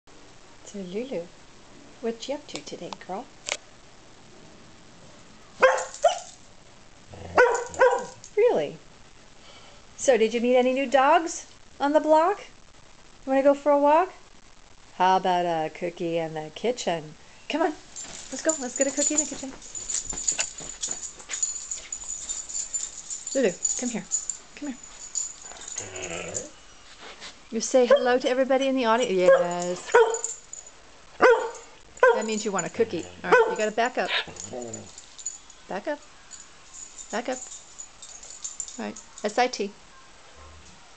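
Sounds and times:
dog barking: 0:05.6 - 0:06.3, 0:07.3 - 0:08.2, 0:29.2 - 0:30.4, 0:31.2 - 0:32.4, 0:33.0 - 0:34.9.

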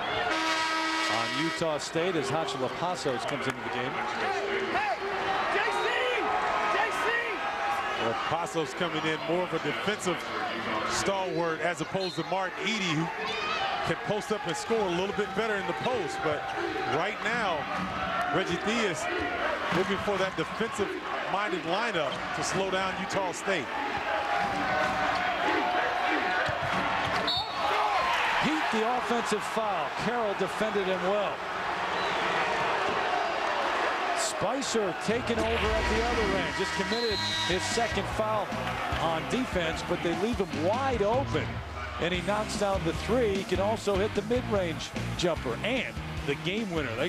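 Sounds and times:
crowd shouting and talking: 0:00.0 - 0:47.0
referee's whistle: 0:11.2 - 0:12.4, 0:27.2 - 0:27.7, 0:31.9 - 0:32.2, 0:35.6 - 0:38.0.

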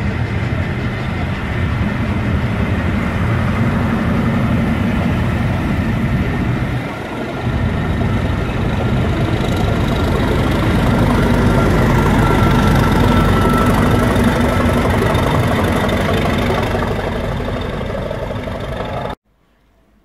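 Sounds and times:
coach wheels rumbling on rails: 0:00.0 - 0:19.2
diesel locomotive engine: 0:00.0 - 0:19.2.

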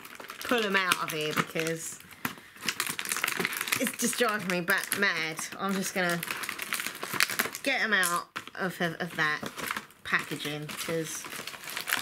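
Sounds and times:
packaging crinkling and crackling: 0:00.0 - 0:12.0.

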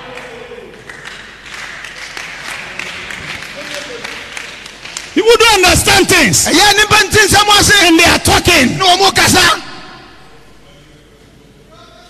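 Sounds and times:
faint voices in reverberant hall: 0:00.0 - 0:12.0.

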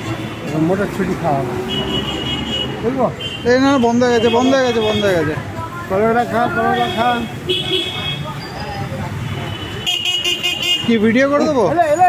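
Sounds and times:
traffic noise: 0:00.0 - 0:12.0
vehicle horns tooting: 0:01.6 - 0:05.4, 0:06.3 - 0:11.4.

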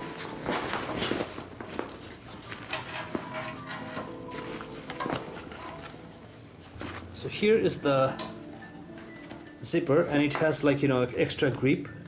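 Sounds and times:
nylon fabric rustling: 0:00.0 - 0:11.1.

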